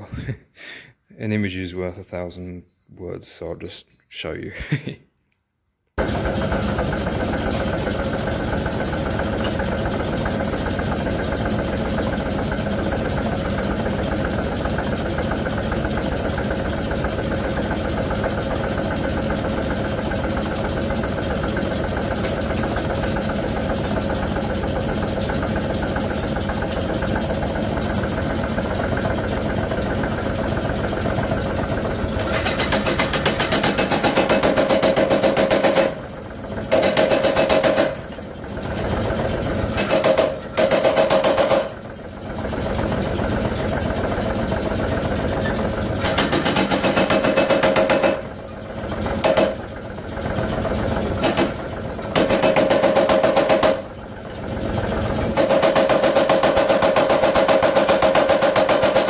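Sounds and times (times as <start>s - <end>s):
power hammer chugging: 6.0s - 59.0s.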